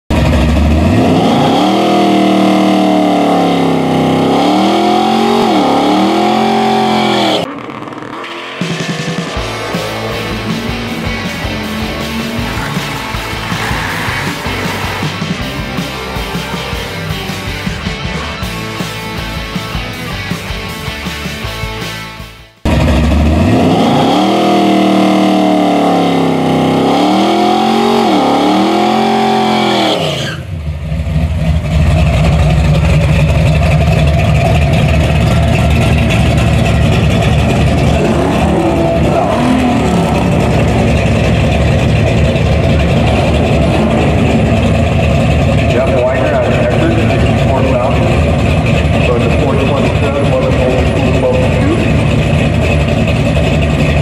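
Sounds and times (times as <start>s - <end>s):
vee eight engine revving and idling: 0.0s - 54.0s.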